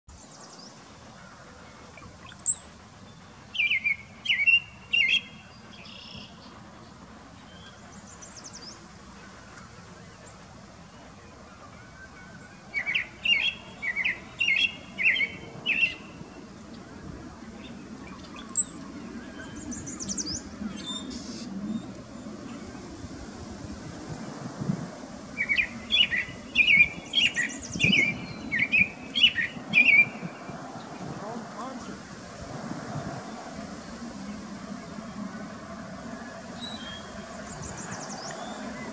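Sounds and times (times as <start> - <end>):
bird singing: 0.1 - 9.6, 10.2 - 22.9, 25.4 - 31.8, 36.0 - 38.9.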